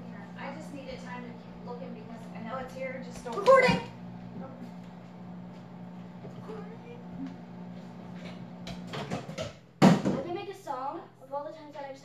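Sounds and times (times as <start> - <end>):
microwave oven humming: 0.0 - 9.9.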